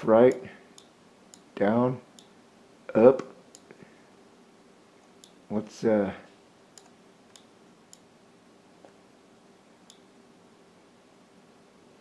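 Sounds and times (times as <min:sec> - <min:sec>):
computer mouse clicks: 0:06.7 - 0:08.1.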